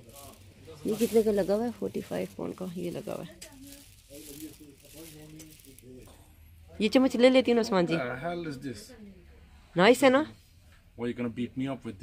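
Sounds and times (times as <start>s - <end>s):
distant voices talking: 0.0s - 9.8s.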